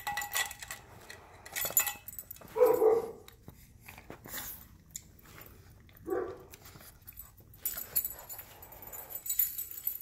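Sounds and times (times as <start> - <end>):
metal collar tag jingling: 0.0 - 3.2, 6.7 - 10.0.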